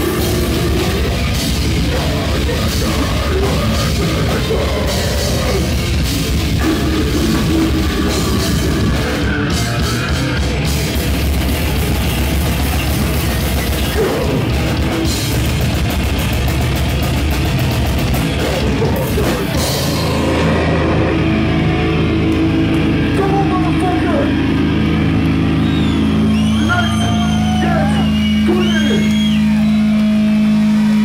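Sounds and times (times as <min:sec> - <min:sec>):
death metal band playing: 0:00.0 - 0:31.0
distorted guitar and bass drone: 0:00.0 - 0:31.0.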